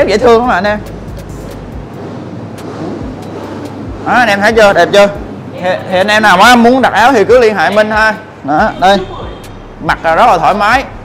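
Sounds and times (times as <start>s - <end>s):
electric fan rushing air: 0.0s - 11.0s.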